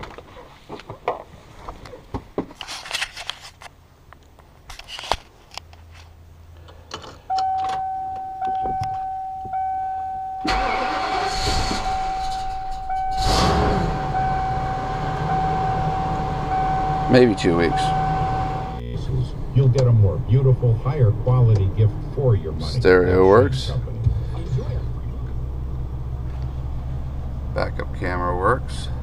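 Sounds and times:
electronic warning tone: 7.3 - 18.8
keys jingling and clicking: 7.4 - 10.2
engine cranking and running: 10.4 - 22.8.

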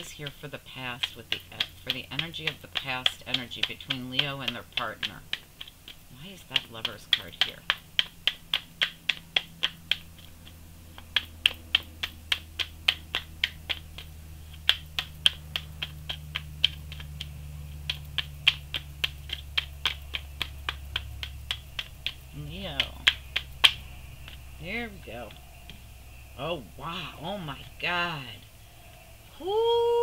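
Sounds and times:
low hum: 0.0 - 30.0.

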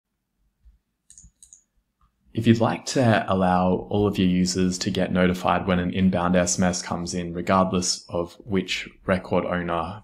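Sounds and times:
computer mouse clicks: 1.1 - 1.7.

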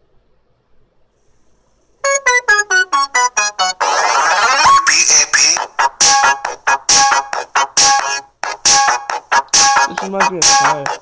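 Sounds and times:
electronic keyboard riff: 2.0 - 11.0.

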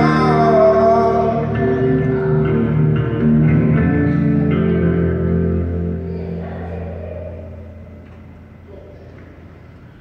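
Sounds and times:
electric guitar chord ringing: 0.0 - 8.7.

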